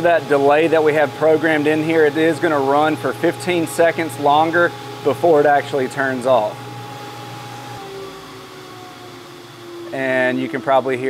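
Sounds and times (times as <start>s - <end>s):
motor winding down with whine: 0.0s - 11.0s.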